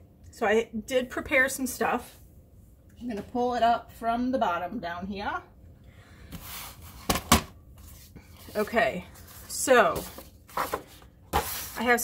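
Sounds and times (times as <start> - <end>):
paper rustling over wooden table: 6.4 - 12.0.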